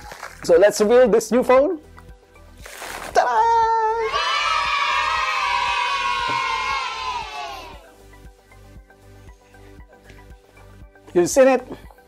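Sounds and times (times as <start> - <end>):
crowd cheering: 4.0 - 7.9.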